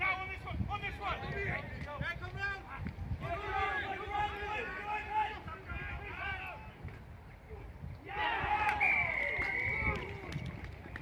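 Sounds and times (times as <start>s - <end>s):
rugby players shouting: 2.5s - 6.8s, 7.5s - 10.3s.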